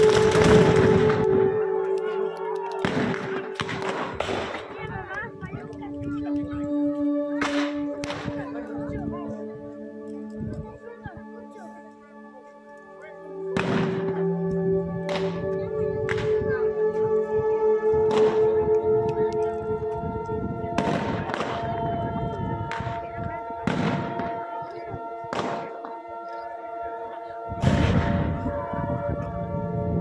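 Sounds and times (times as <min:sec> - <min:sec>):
black-powder gunshots with echo: 0:00.0 - 0:01.3, 0:02.8 - 0:04.8, 0:07.4 - 0:08.4, 0:13.5 - 0:14.2, 0:20.8 - 0:21.7, 0:23.6 - 0:24.4, 0:25.3 - 0:26.0, 0:27.6 - 0:28.3
music with long held tones: 0:00.0 - 0:30.0.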